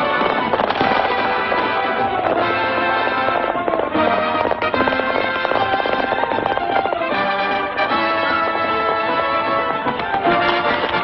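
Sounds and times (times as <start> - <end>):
loud orchestral music: 0.0 - 11.0
sharp cracks: 0.0 - 11.0.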